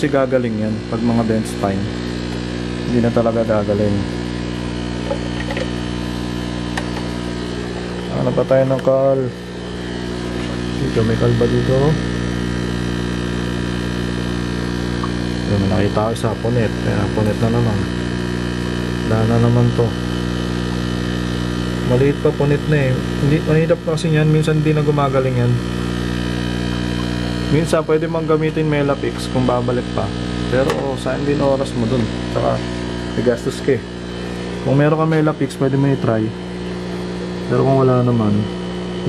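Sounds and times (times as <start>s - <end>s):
aquarium air pump humming: 0.0s - 39.0s.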